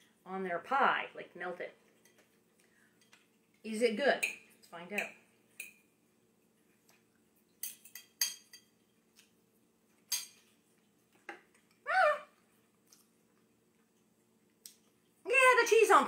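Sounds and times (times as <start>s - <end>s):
faint steady hum: 0.0s - 16.0s.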